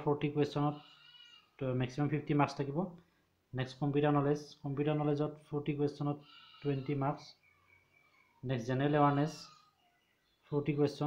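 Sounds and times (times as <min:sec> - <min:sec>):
man speaking: 0:00.0 - 0:00.9, 0:01.6 - 0:07.4, 0:08.4 - 0:09.6, 0:10.5 - 0:11.0.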